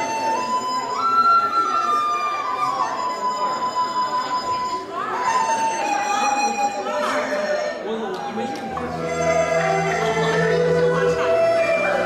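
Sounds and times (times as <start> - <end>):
bamboo flute slow melody: 0.0 - 12.0.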